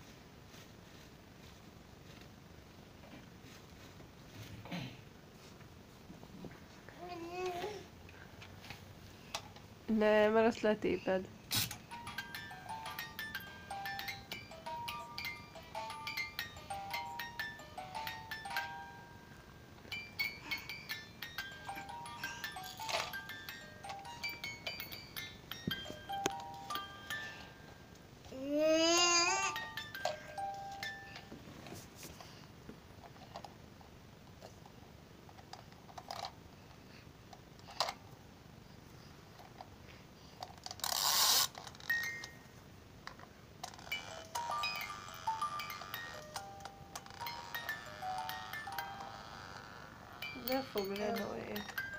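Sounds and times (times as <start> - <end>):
toy electronic beeping tune: 43.8 - 51.9.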